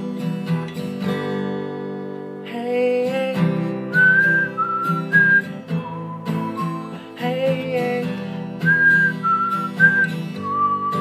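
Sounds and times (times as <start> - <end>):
acoustic guitar strumming chords: 0.0 - 11.0
man whistling a slow melody: 3.4 - 11.0.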